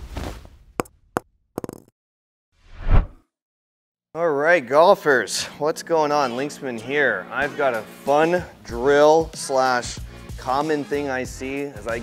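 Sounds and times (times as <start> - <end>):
swoosh: 2.7 - 3.2.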